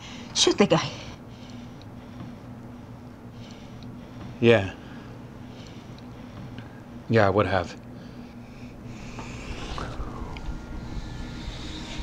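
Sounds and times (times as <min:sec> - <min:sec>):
low steady rumble: 0:08.4 - 0:12.0
faint sustained tones: 0:09.0 - 0:12.0.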